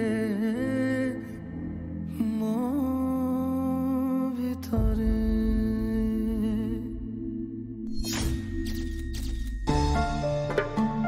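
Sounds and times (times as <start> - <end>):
deep bass: 4.7 - 7.9.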